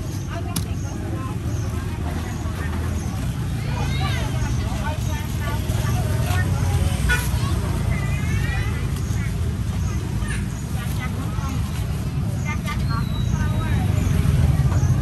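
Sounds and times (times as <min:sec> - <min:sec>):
low rumble of traffic: 0:00.0 - 0:15.0
people's voices: 0:00.0 - 0:15.0.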